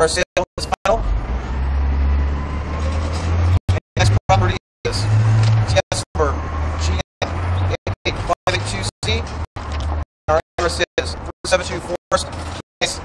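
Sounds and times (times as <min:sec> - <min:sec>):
vehicle engine low rumble: 0:00.9 - 0:12.6
indistinct voices: 0:03.7 - 0:13.0.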